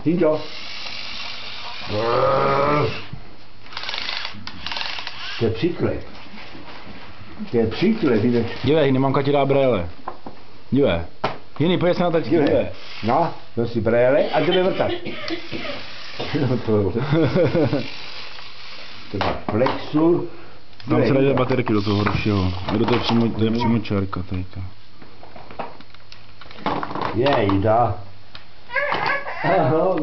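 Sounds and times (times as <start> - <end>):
steady background hiss: 0.0 - 30.0
toy power drill buzzing: 0.4 - 2.2, 2.9 - 5.5, 12.8 - 13.3, 15.4 - 19.1, 21.8 - 22.8.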